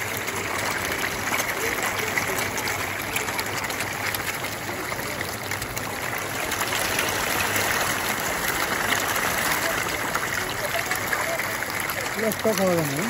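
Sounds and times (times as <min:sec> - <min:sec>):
fish splashing and slurping: 0:00.0 - 0:13.0.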